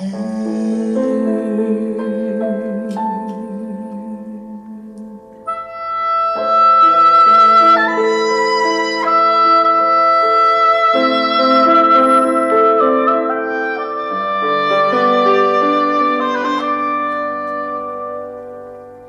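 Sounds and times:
piano and ensemble chords: 0:00.0 - 0:19.0
clarinet playing slow melody: 0:00.3 - 0:19.0.

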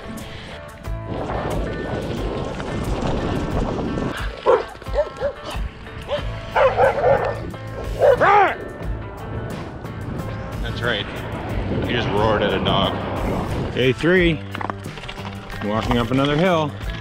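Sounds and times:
background music: 0:00.0 - 0:17.0
dog barking: 0:04.4 - 0:08.6.

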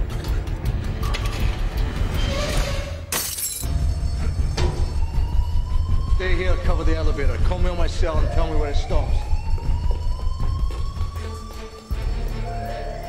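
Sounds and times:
tense action film score: 0:00.0 - 0:13.0.

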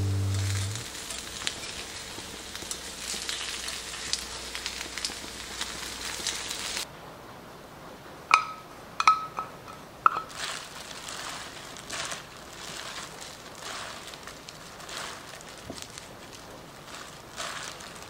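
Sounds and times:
potato pancakes sizzling in oil: 0:00.0 - 0:06.9, 0:10.1 - 0:18.0
spoon clinking glass bowl: 0:08.3 - 0:10.3
leafy greens rustling: 0:10.0 - 0:18.0.

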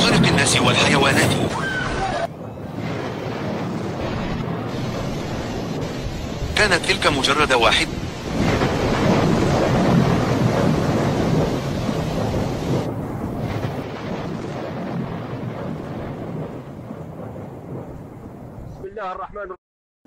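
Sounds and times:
floodwater rushing roar: 0:00.0 - 0:16.9.

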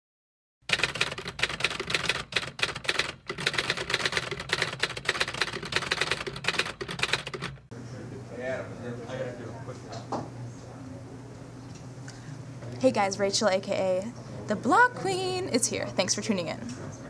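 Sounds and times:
rapid keyboard typing: 0:00.7 - 0:07.7.

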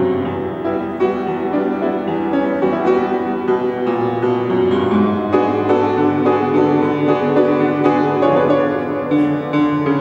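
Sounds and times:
grand piano playing: 0:00.0 - 0:10.0.

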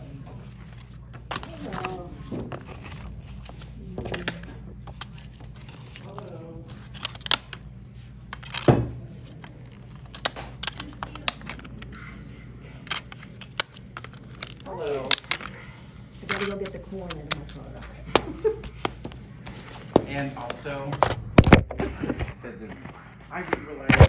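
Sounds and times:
low steady hum: 0:00.0 - 0:24.0
paper rustling: 0:00.0 - 0:24.0.

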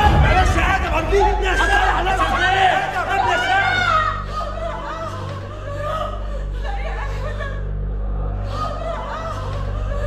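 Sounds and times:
low music bed: 0:00.0 - 0:10.0.

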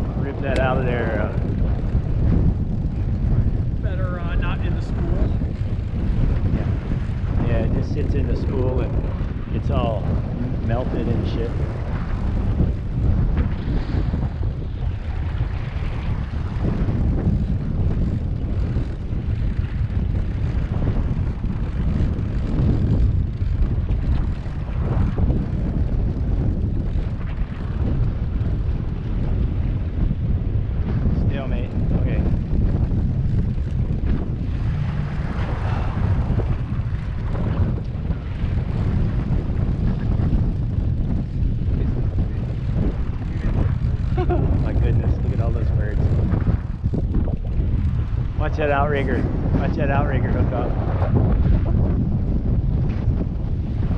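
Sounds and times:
outboard motors rumbling: 0:00.0 - 0:53.9
wind buffeting microphone: 0:00.0 - 0:53.9.

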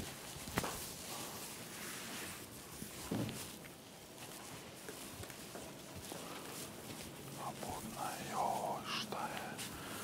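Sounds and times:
person whispering: 0:07.4 - 0:10.0.

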